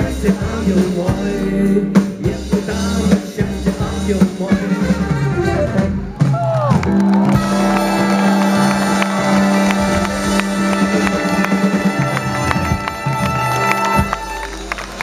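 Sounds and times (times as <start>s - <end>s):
drums: 0.0s - 15.0s
keyboards: 0.0s - 15.0s
horn section: 4.1s - 6.1s, 7.1s - 15.0s
electric guitars: 6.6s - 15.0s.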